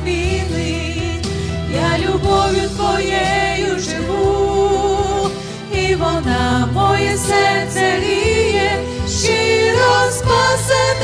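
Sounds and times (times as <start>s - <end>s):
women singing in harmony: 0.0s - 11.0s.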